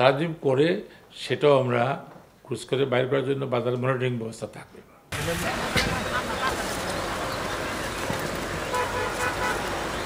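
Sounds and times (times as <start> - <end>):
outdoor background noise: 0.0 - 10.0
vehicle horn tooting faintly: 8.7 - 9.7.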